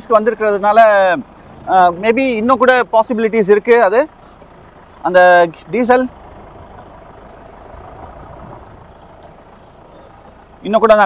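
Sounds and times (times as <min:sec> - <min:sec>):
faint diesel engine running: 0:00.0 - 0:11.0.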